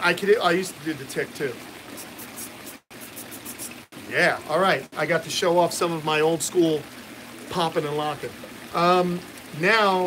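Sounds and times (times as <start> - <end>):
running water: 0.0 - 10.0.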